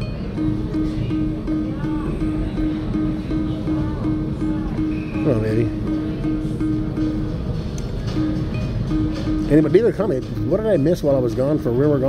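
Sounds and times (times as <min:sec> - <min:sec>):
short repeating tones: 0:00.0 - 0:11.8
casino machine music: 0:00.0 - 0:12.0.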